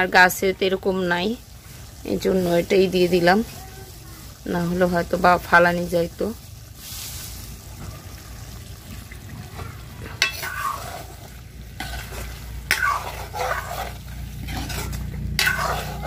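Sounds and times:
curry sizzling: 0.0s - 16.0s
ladle scraping a pan: 9.5s - 16.0s.

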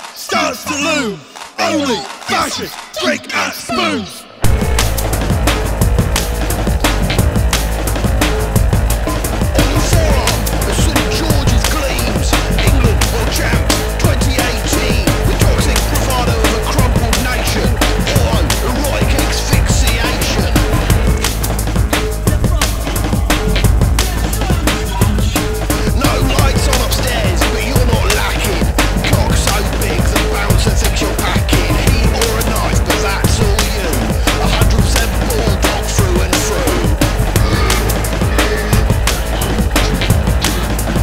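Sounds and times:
fast instrumental band music: 4.4s - 41.0s
rapid drumming: 4.4s - 41.0s.

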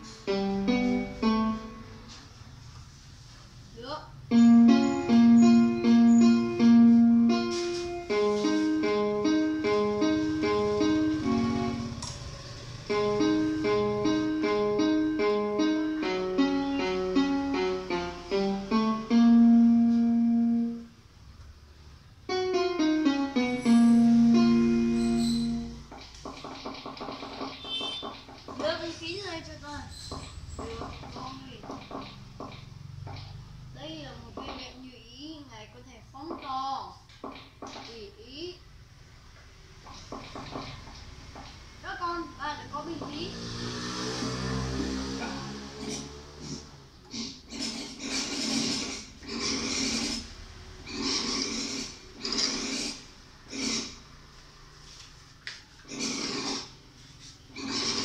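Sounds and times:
electronic keyboard melody: 0.0s - 2.6s, 4.2s - 21.2s, 22.1s - 25.9s.

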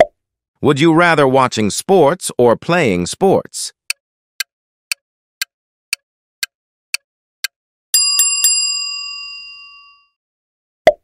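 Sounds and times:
countdown timer ticking: 3.8s - 7.6s
bell ringing: 8.0s - 10.2s.

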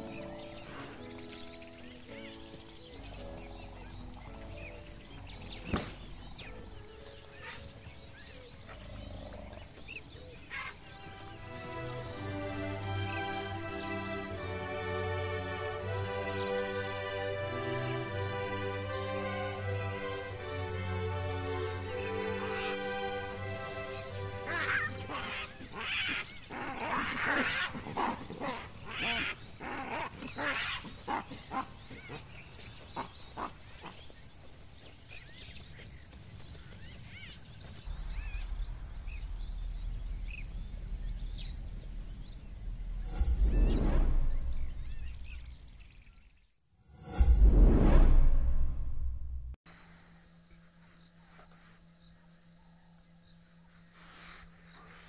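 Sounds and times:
soft music: 0.0s - 9.6s, 10.5s - 26.6s, 37.8s - 45.8s
baboons grunting: 8.4s - 10.7s, 24.4s - 34.2s
low rumble: 37.7s - 46.1s, 46.9s - 49.6s
whoosh: 37.9s - 45.8s, 46.8s - 49.6s.

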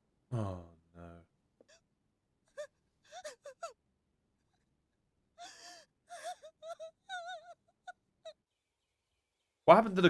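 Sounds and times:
person groaning: 0.3s - 1.2s
high-pitched whimpering cries: 2.5s - 3.8s, 5.4s - 8.4s.

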